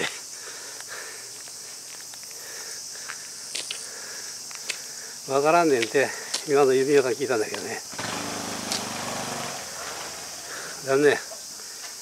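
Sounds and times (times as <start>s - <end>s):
small motorbike engine humming: 7.9s - 10.9s.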